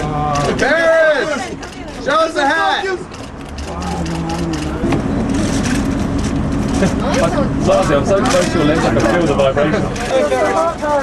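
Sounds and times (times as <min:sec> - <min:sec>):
vehicle engine running: 0:03.0 - 0:11.0.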